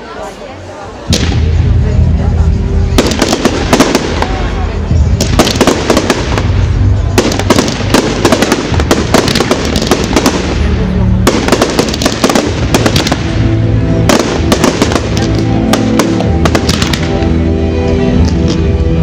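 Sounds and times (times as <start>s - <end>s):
music: 0.2s - 19.0s
fireworks bangs and crackles: 1.0s - 17.5s, 18.1s - 19.0s.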